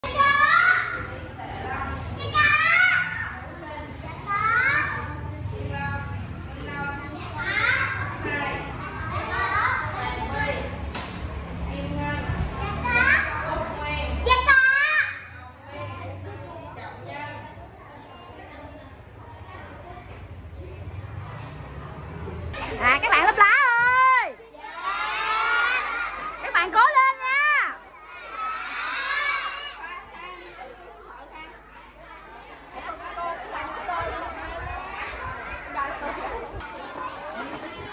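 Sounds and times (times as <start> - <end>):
high loud children's calls: 0.0 - 5.6, 6.4 - 10.9, 11.5 - 37.9
children chattering: 0.0 - 37.9
children shouting a cheer: 24.6 - 26.5, 27.3 - 30.0.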